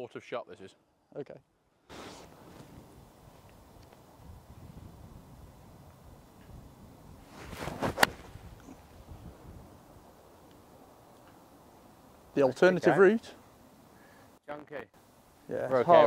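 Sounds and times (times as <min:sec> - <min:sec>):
golf club swishing through grass: 0:01.9 - 0:03.6, 0:07.2 - 0:09.5
wind noise on microphone: 0:02.3 - 0:10.2
golf club striking ball: 0:07.8 - 0:08.4.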